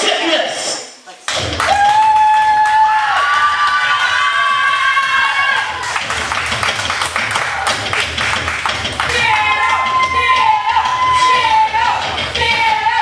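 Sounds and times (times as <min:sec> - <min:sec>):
entrance music with low beat: 0:01.3 - 0:03.4, 0:04.2 - 0:13.0
crowd cheering: 0:01.4 - 0:13.0.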